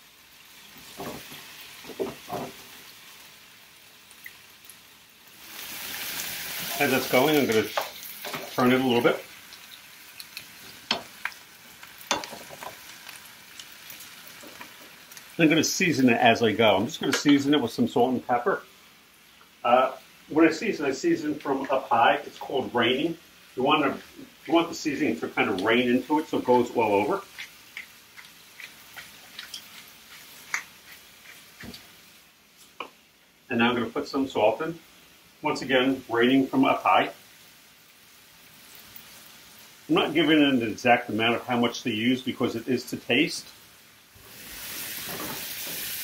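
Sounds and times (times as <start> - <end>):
vegetables sizzling in a skillet: 0.0 - 46.0
wooden spoon knocking on pan: 1.0 - 2.6.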